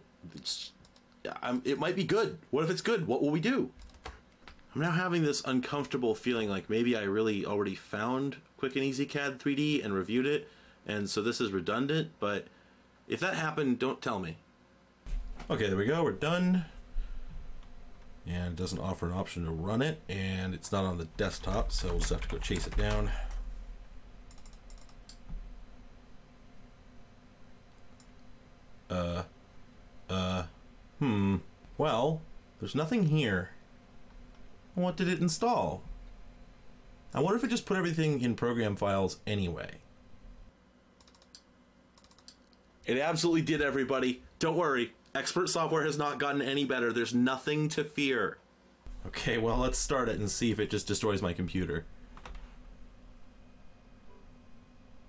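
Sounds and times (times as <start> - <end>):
low steady hum: 0.0 - 55.0
computer keyboard keystrokes: 3.8 - 4.2, 21.4 - 23.1, 24.3 - 25.2, 41.0 - 42.5
faint keyboard or mouse clicks: 41.0 - 42.7.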